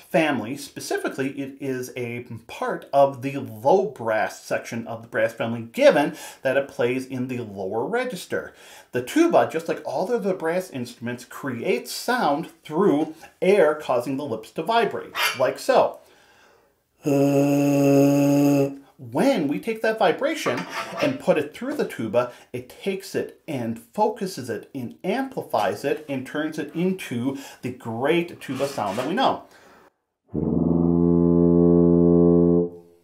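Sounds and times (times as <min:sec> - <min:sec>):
lip buzz into mouthpiece: 0:17.1 - 0:18.7
tuba playing low note: 0:30.3 - 0:32.9.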